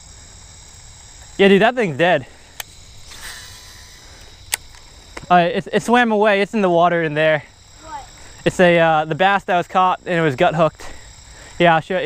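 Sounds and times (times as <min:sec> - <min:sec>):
crickets chirring: 0:00.0 - 0:12.0
sharp click: 0:04.2 - 0:05.3.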